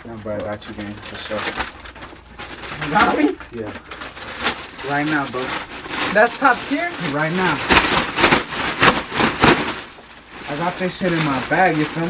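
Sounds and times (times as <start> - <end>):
fabric cape flapping: 4.0 - 12.0.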